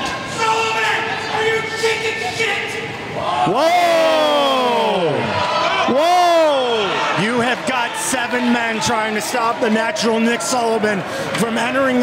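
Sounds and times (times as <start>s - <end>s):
crowd noise: 0.0s - 12.0s
man shouting: 0.2s - 7.3s.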